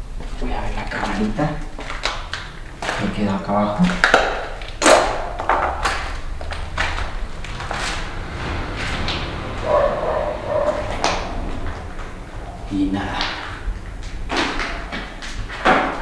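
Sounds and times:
footsteps on stairs and wooden floor: 0.0s - 16.0s.

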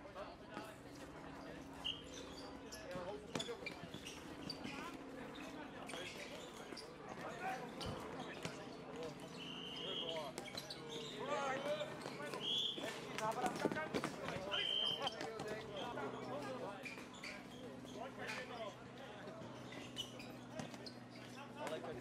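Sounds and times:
short high squeaks: 9.4s - 12.9s, 14.5s - 18.8s, 19.5s - 21.4s.

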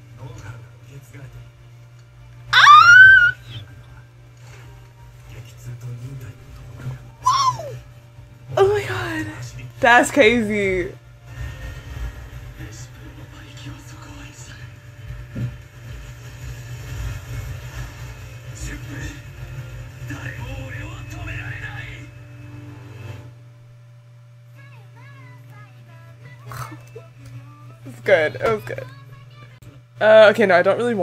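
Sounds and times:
woman squealing: 2.5s - 3.6s, 7.2s - 7.8s.

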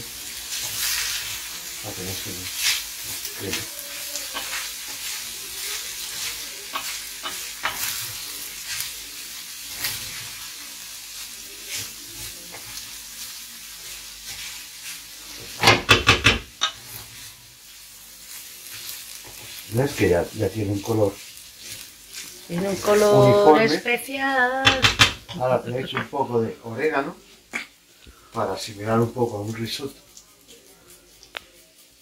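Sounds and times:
spoon scraping frying pan: 3.6s - 8.8s, 14.2s - 17.3s, 24.6s - 26.2s.

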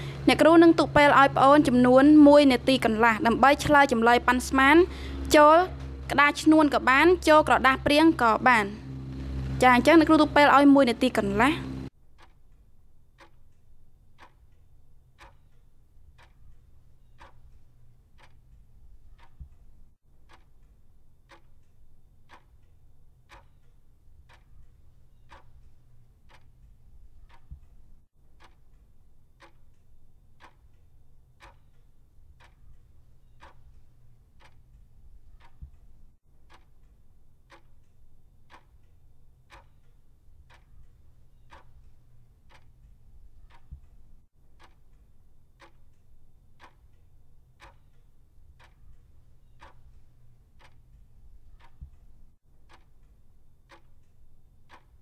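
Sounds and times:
clock ticking: 0.0s - 55.0s.

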